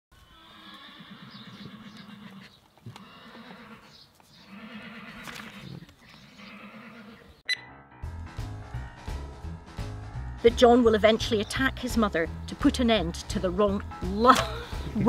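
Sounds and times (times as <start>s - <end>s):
horse neighing: 0.2s - 7.4s
music: 7.5s - 15.0s.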